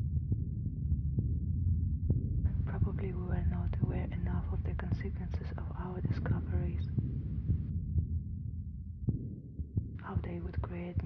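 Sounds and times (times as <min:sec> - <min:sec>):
low pulsing rumble: 0:00.0 - 0:11.0.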